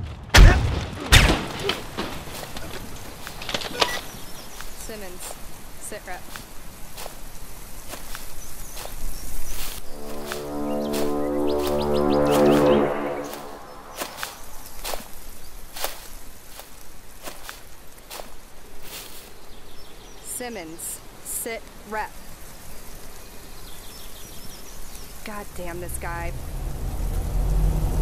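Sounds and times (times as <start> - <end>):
low soundtrack drone: 9.8 - 14.5.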